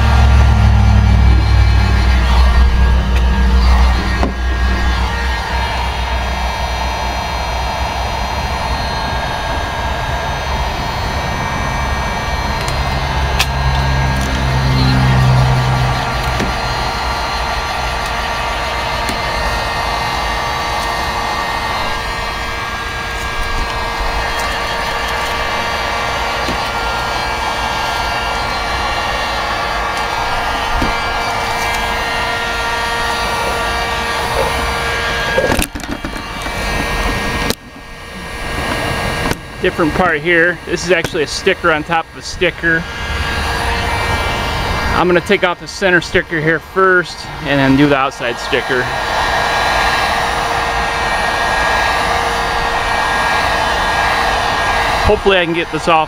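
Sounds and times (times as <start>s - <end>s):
low rumble: 0.0s - 35.5s
heat gun blowing: 0.0s - 56.0s.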